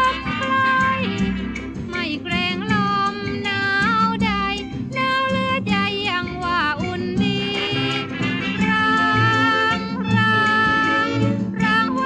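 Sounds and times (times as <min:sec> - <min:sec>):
woman singing slow pop song: 0:00.0 - 0:01.2, 0:02.0 - 0:12.0
band accompaniment: 0:00.0 - 0:03.5, 0:07.1 - 0:12.0.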